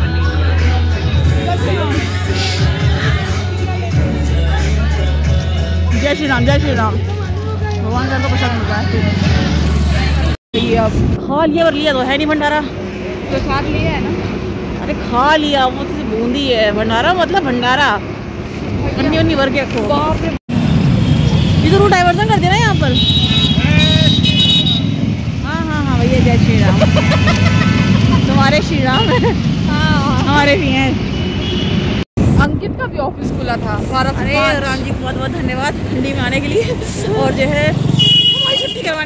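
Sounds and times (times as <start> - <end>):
low rumble of street traffic: 0.0 - 39.0
wind: 5.8 - 39.0
voices talking: 21.5 - 24.4, 25.3 - 31.1, 32.4 - 39.0.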